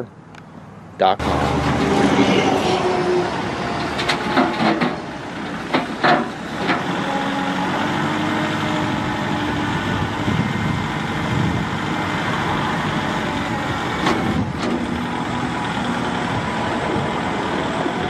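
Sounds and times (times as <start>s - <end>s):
tractor diesel engine running: 1.2s - 18.0s.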